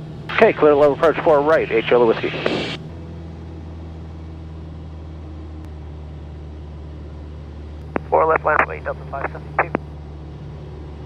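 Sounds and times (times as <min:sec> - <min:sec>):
airplane engine drone in cockpit: 0:00.0 - 0:11.0.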